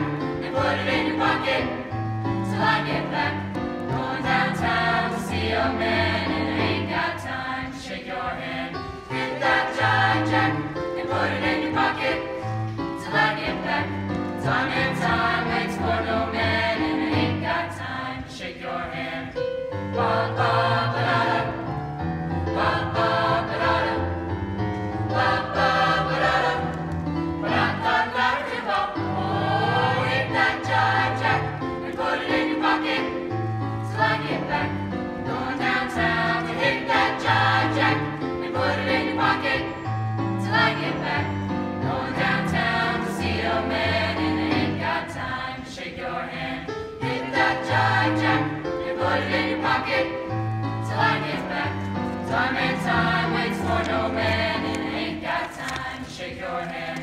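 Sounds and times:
mixed choir singing in parts: 0.0s - 57.0s.

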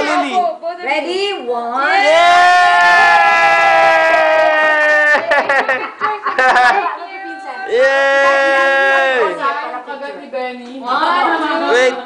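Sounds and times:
person cheering: 2.0s - 5.6s, 7.7s - 9.4s.

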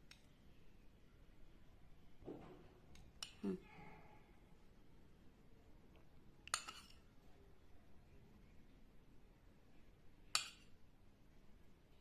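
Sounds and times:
metal spoon clinking ceramic bowl: 6.5s - 7.0s.

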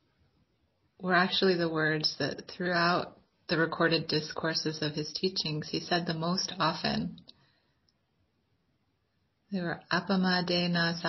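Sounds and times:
woman speaking: 1.0s - 7.3s, 9.5s - 11.0s.

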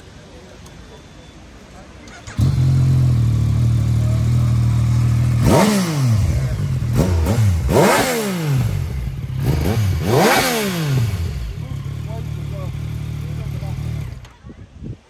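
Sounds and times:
motorcycle engine revving and idling: 2.1s - 14.4s.

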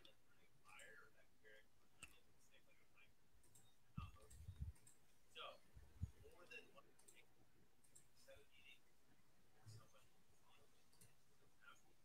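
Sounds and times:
faint clicks: 2.0s - 2.2s, 6.4s - 8.1s.

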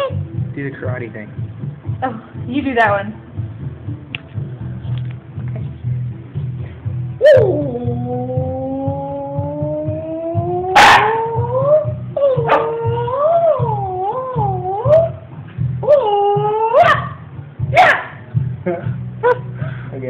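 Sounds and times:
dog howling: 7.2s - 15.2s, 15.8s - 17.2s.

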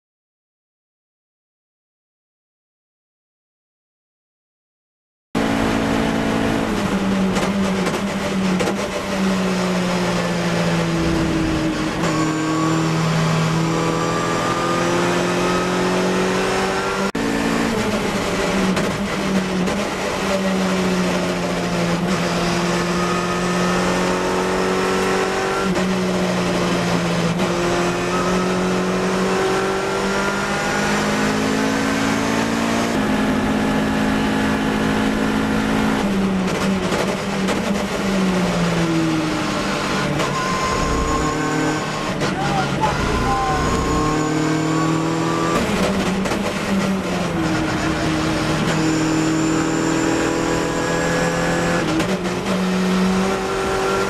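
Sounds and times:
race car engine revving: 5.4s - 54.0s.

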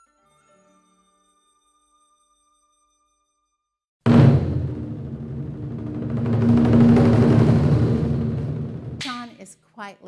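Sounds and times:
low rumbling swell: 4.1s - 9.0s.

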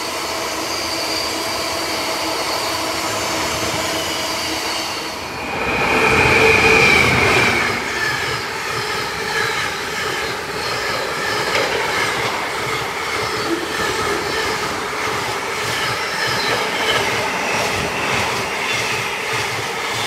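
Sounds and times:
train wheels rumbling on rails: 0.0s - 20.0s
wheels clicking over rail joints: 8.0s - 18.3s.

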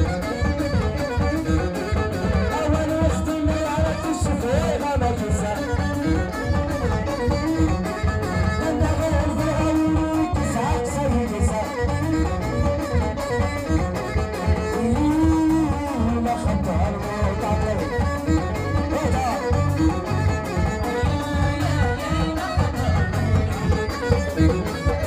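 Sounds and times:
drums and hand percussion: 0.0s - 25.0s
live folk band playing: 0.0s - 25.0s
string instruments melody: 0.0s - 25.0s.

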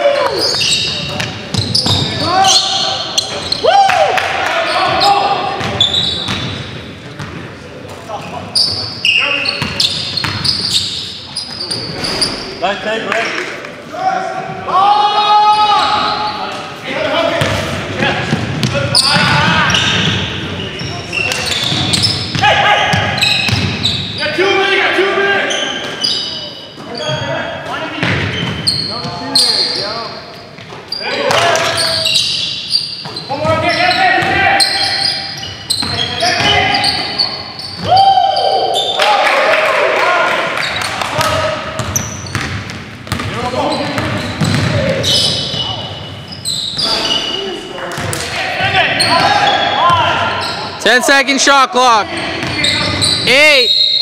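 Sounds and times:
players calling out: 0.0s - 6.6s, 30.9s - 54.0s
shoe squeaks: 0.3s - 3.7s, 4.6s - 6.6s, 8.5s - 12.6s, 18.7s - 22.4s, 23.0s - 24.4s, 25.3s - 39.0s, 41.8s - 42.6s, 43.2s - 47.8s, 48.9s - 51.0s, 52.0s - 54.0s
basketball bouncing on hardwood: 41.8s - 44.7s.

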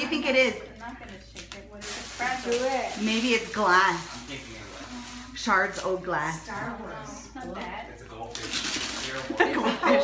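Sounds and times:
wrapping paper tearing: 0.8s - 6.0s, 8.2s - 9.4s.

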